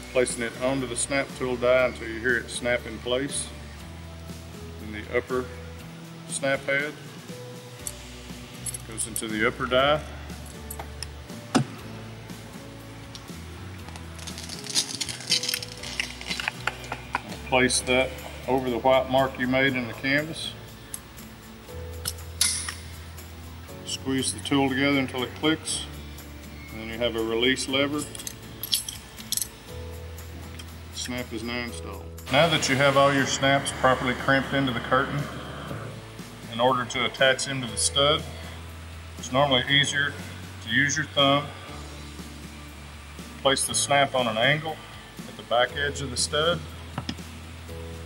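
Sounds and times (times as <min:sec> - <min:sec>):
background music with held notes: 0:00.0 - 0:48.0.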